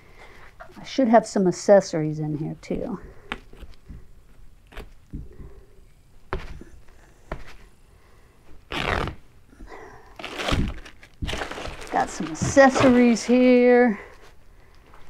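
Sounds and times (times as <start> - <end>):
cloth cover rustling: 8.6 - 9.2, 10.1 - 14.0.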